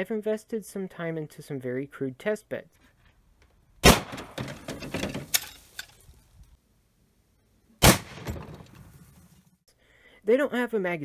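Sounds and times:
rifle shots: 3.8 - 4.4, 7.8 - 8.6
metallic rattling: 4.0 - 6.2.

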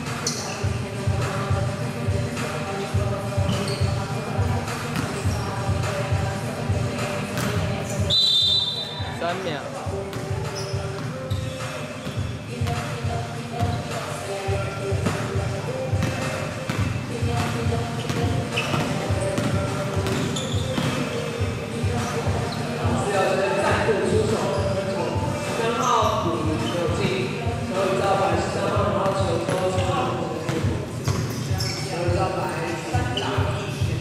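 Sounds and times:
shoe squeal: 0.0 - 1.5, 2.6 - 6.2, 7.0 - 9.2, 10.0 - 12.9, 13.5 - 34.0
players' voices: 0.0 - 34.0
basketball bouncing on court: 7.4 - 7.9, 14.5 - 22.5, 28.0 - 32.2.

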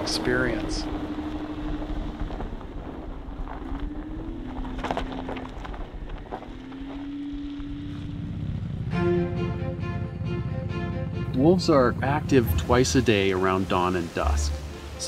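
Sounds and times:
car engine running: 0.0 - 15.0
background music: 8.9 - 15.0.

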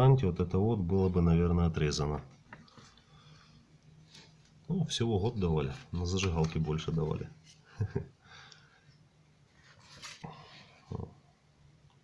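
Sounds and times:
paper page turning: 5.7 - 7.6, 9.6 - 10.3.

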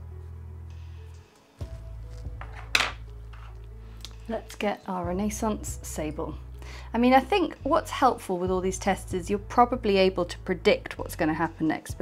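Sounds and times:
hard object clinking: 2.4 - 3.6.

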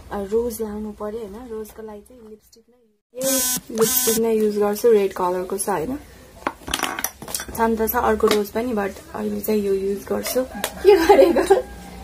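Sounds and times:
woman speaking: 0.1 - 6.0.

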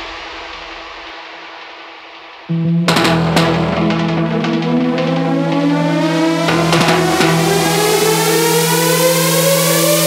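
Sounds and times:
high noise hiss: 0.0 - 10.0
held low synth chord: 2.5 - 10.0
synth sweep rising in pitch: 2.5 - 10.0.

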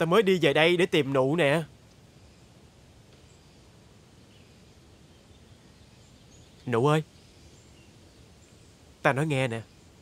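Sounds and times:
low steady background hiss: 0.0 - 10.0
faint high bird chirps: 2.2 - 10.0.

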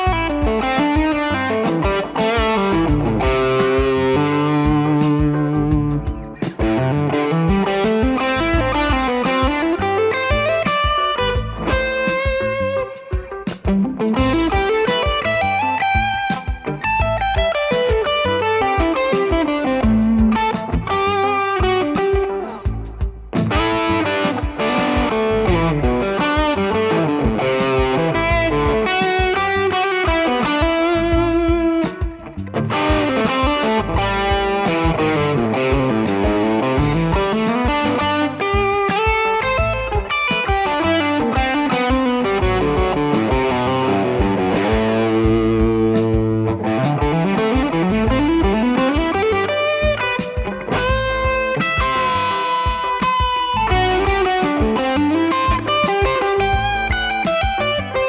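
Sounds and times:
backing track with steady beat: 0.0 - 58.0
electric guitar lead lines: 0.0 - 58.0.

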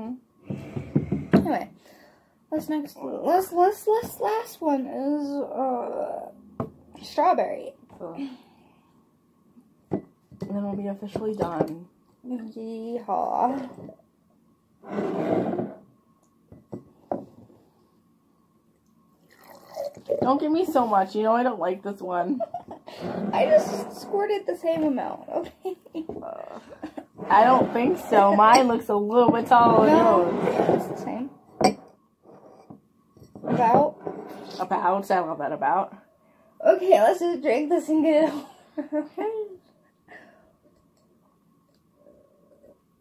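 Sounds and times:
milk pouring into cup: 19.2 - 20.2
person speaking indistinctly: 23.2 - 25.3, 26.2 - 31.3.

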